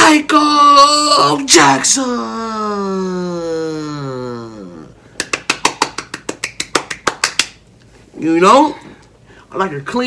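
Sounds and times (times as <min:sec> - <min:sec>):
rapid hand claps: 0:05.2 - 0:07.6.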